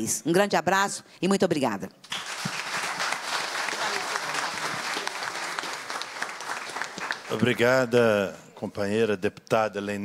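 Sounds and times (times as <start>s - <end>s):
audience applauding: 2.0s - 8.0s.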